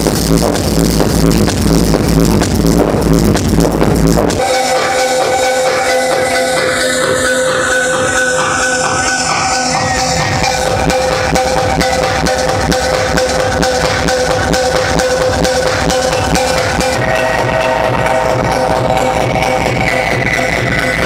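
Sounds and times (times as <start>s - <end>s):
deep bass kick: 0.0s - 4.4s, 9.8s - 21.0s
techno music: 0.0s - 21.0s
falling pitch sweep: 4.4s - 11.8s.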